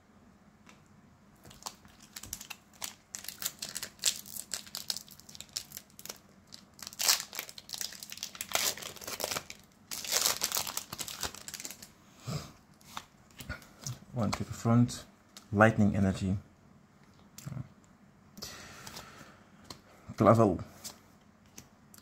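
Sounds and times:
foil wrapper crinkling: 1.4 - 11.9.

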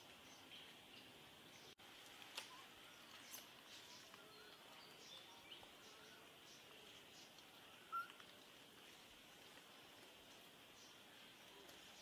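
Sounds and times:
steady high hiss: 0.0 - 12.0
bird chirps: 2.5 - 8.2.

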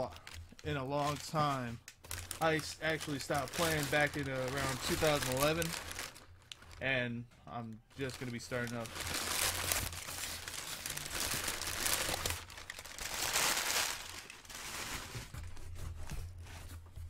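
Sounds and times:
packing paper crinkling: 0.0 - 6.8, 7.9 - 16.7.

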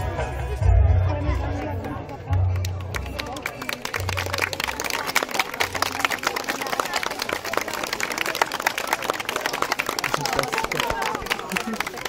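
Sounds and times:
small audience clapping: 2.3 - 12.0.

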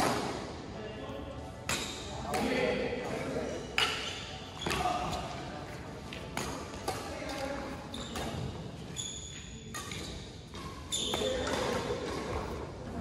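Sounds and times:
rackets hitting shuttlecock: 1.6 - 2.6, 6.1 - 8.7, 9.7 - 12.6.

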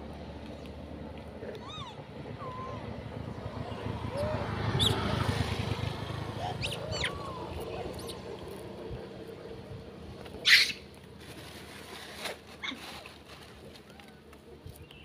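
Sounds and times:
motorcycle passing: 0.0 - 12.0
monkeys squeaky calls: 1.6 - 2.9, 3.8 - 5.1, 6.3 - 8.4, 10.4 - 10.8.

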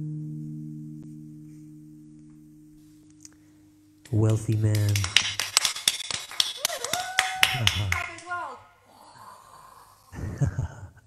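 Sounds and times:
people clapping fast: 4.0 - 8.6
people cheering with whoops: 6.4 - 8.5.

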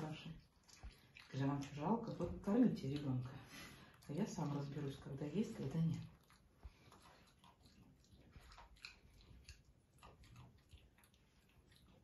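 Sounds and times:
monkey chewing food: 0.0 - 12.0.

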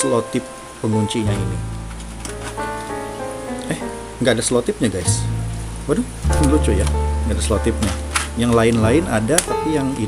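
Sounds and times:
background music with held notes: 0.0 - 10.0
plastic blister tray crackling: 1.4 - 3.0, 6.3 - 9.8.

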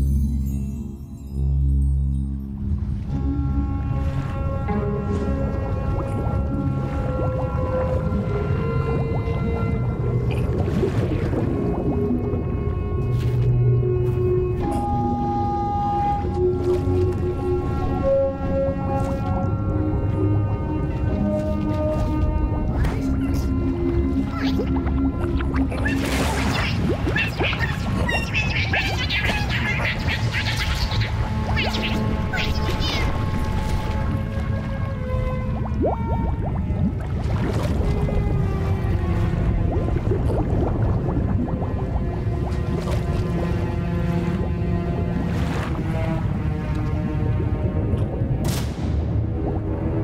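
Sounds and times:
cartoon background music: 0.0 - 50.0
watery underwater sound effects: 2.5 - 50.0
low rumble: 33.1 - 50.0.

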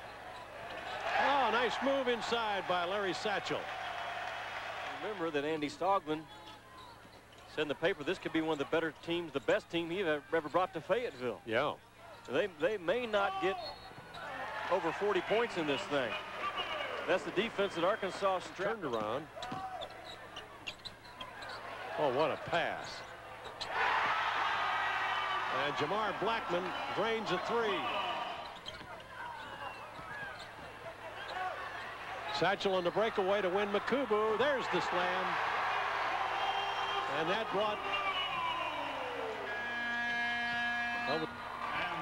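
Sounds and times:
arena background noise: 0.0 - 42.0
sneaker squeaks: 6.3 - 7.6, 13.5 - 14.3, 17.7 - 23.8, 27.7 - 33.1
basketball bouncing: 19.4 - 19.7
arena horn steady tone: 39.4 - 41.4.

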